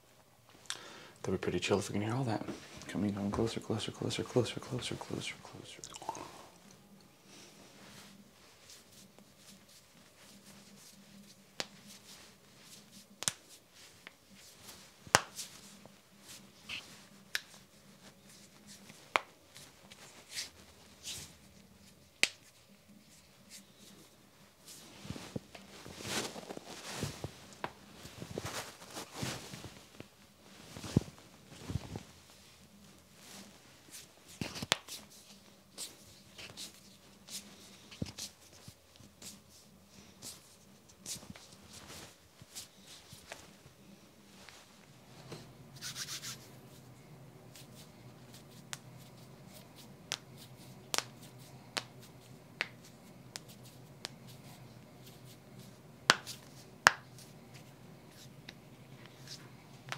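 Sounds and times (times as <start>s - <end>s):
rustling near microphone: 7.3s - 59.9s.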